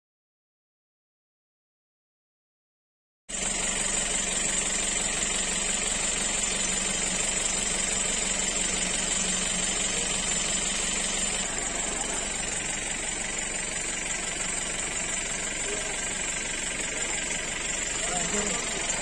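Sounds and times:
outboard motor running: 3.3 - 19.0.

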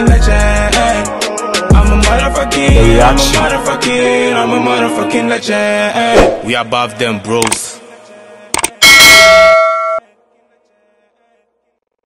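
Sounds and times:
bell ding: 8.8 - 10.0.

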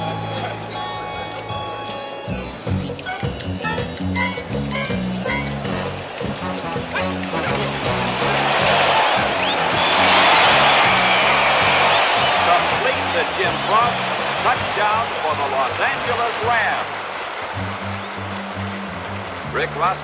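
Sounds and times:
film score with bass line: 2.3 - 20.0
stadium crowd cheering: 4.9 - 20.0.

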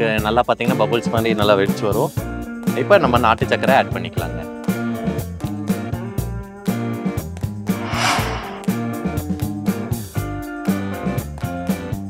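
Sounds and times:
burst of hiss: 7.8 - 8.8.

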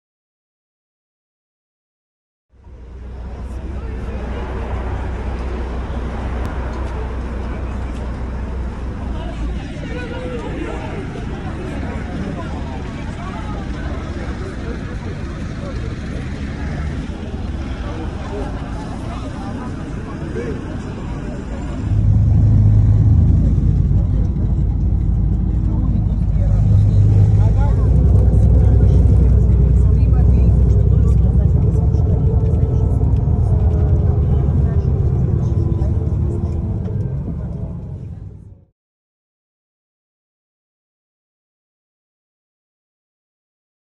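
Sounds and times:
bus engine and road rumble: 2.6 - 38.7
crowd of passengers talking: 2.6 - 38.7.

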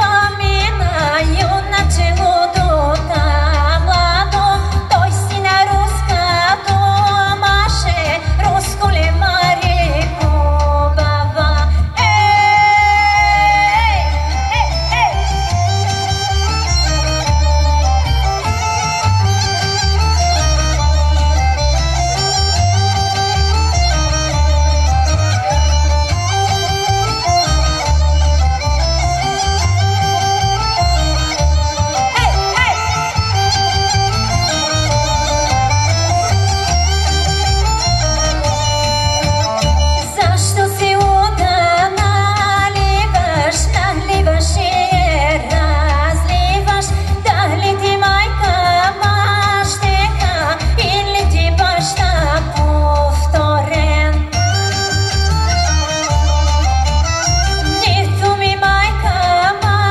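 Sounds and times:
woman singing: 0.0 - 15.7, 40.0 - 54.4, 57.6 - 59.9
folk music over speakers: 0.0 - 59.9.

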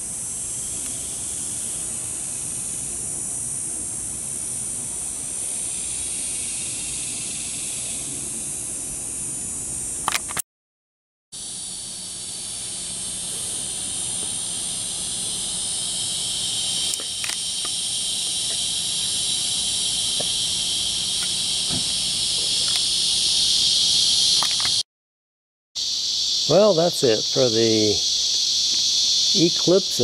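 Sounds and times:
insect chorus buzzing: 0.0 - 10.4, 11.4 - 24.8, 25.8 - 30.0.

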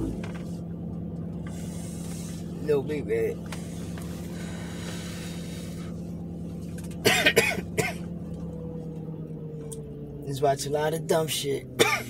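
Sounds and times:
low hum inside car: 0.0 - 12.0
man coughing: 7.0 - 8.1, 11.8 - 12.0.

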